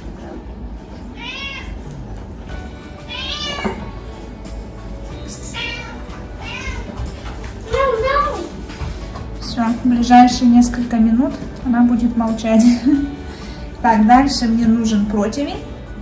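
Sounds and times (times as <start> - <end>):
cat meowing: 1.1 - 1.8, 3.0 - 3.9, 5.5 - 7.1.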